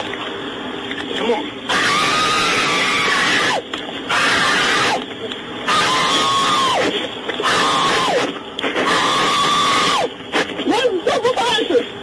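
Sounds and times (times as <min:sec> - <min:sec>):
woman screaming: 0:01.7 - 0:05.0, 0:05.7 - 0:08.3.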